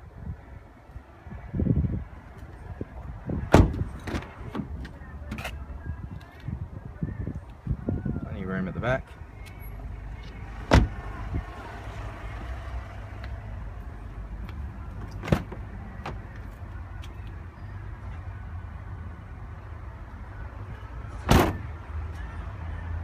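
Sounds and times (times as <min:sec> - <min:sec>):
car door shutting: 0:03.5 - 0:05.5, 0:10.7 - 0:11.0, 0:15.0 - 0:16.2, 0:21.2 - 0:21.6.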